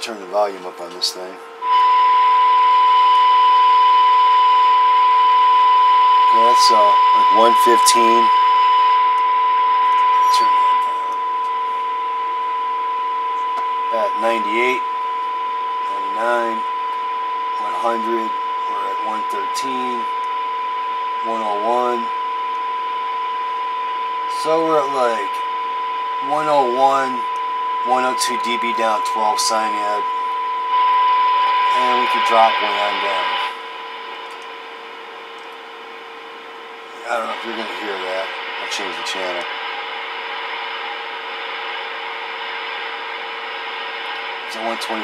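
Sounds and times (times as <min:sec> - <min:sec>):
radio hiss: 0:00.0 - 0:01.4, 0:06.1 - 0:34.8, 0:36.3 - 0:45.0
fainter lower tone: 0:00.0 - 0:34.7, 0:36.8 - 0:39.5
steady test tone: 0:00.0 - 0:45.0.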